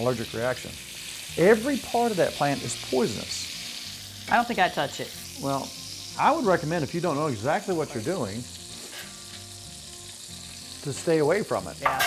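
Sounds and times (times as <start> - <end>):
pork chop sizzling in hot oil: 0.0 - 12.0.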